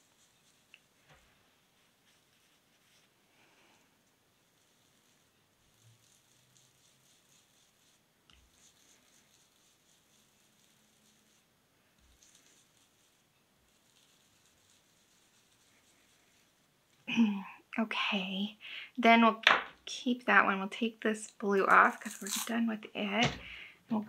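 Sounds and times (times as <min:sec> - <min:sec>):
sponge scrubbing on paper: 0:00.0 - 0:16.8.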